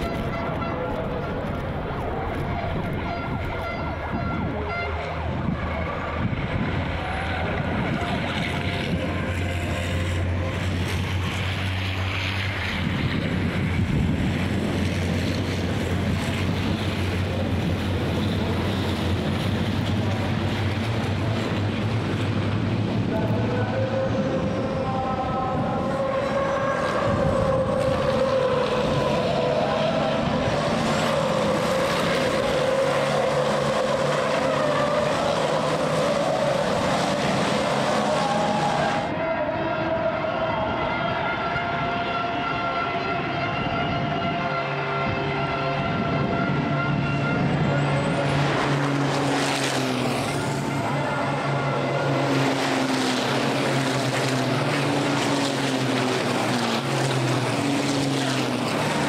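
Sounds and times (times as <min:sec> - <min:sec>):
racing truck engines: 0:00.0 - 0:59.0.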